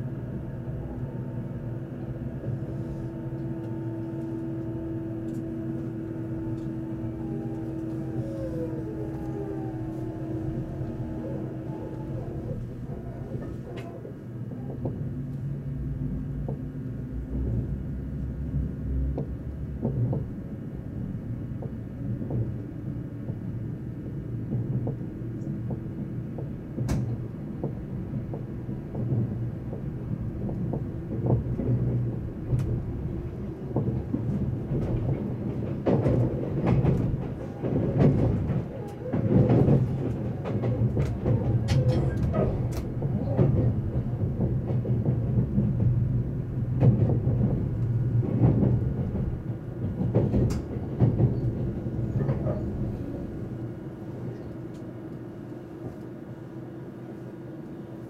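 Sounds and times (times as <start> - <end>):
train wheels rumbling: 0.0 - 58.0.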